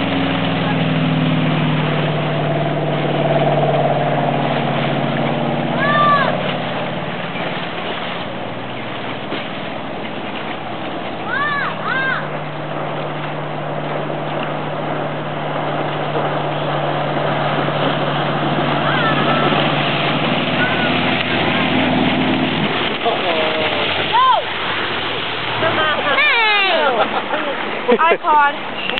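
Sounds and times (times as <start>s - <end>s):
motorboat engine running: 0.0s - 28.9s
rushing water: 0.0s - 28.9s
loud shout: 5.8s - 6.4s, 11.3s - 12.3s, 24.1s - 24.5s
whoops and laughter: 25.6s - 27.6s.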